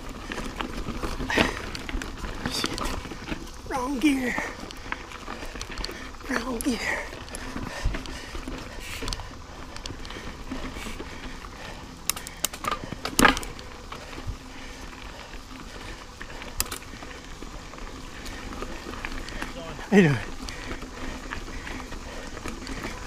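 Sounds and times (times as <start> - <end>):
bike knocking and rattling: 0.0 - 23.0
bike tyre noise on dirt: 0.0 - 23.0.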